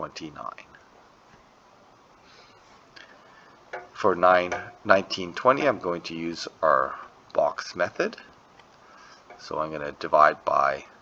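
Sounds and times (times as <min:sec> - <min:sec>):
person speaking: 0:00.0 - 0:00.8, 0:03.8 - 0:08.3, 0:09.3 - 0:11.0
room hiss: 0:00.0 - 0:11.0.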